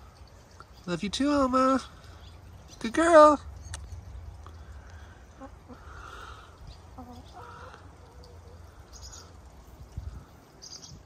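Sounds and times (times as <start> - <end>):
low steady rumble: 0.0 - 10.6
hens clucking: 5.2 - 8.7.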